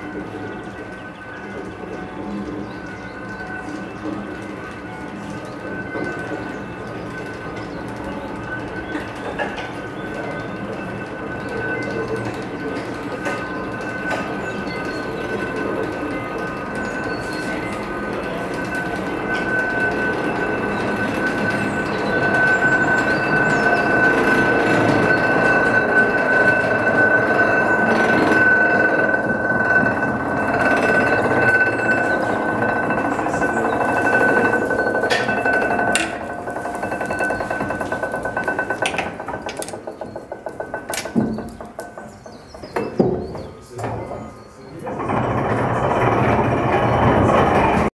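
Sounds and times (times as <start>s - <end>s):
funicular car high whine: 0.0s - 47.9s
rhythmic metallic clicking: 0.0s - 47.9s.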